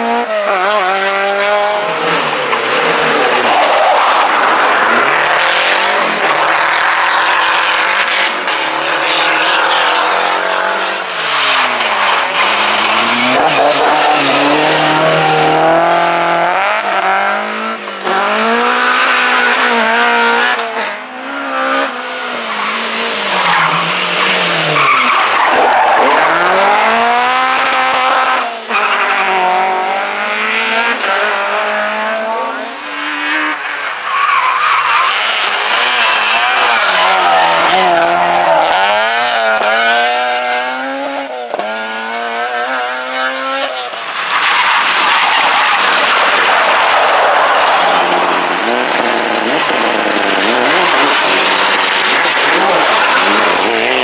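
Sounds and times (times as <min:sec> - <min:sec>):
rally car engines revving: 0:00.0 - 0:54.0
tyres squealing and skidding: 0:01.8 - 0:17.2, 0:21.9 - 0:29.4, 0:32.6 - 0:39.8, 0:43.9 - 0:54.0.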